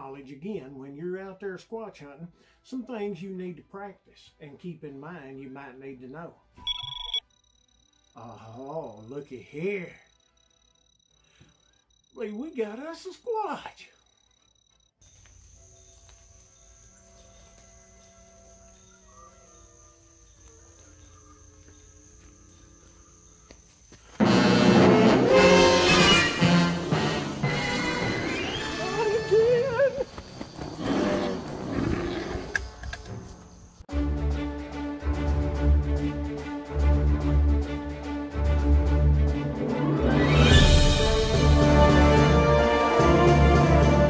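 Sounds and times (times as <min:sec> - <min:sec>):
faint music with held notes: 0:15.2 - 0:23.8
wild roaring cries: 0:30.6 - 0:32.6.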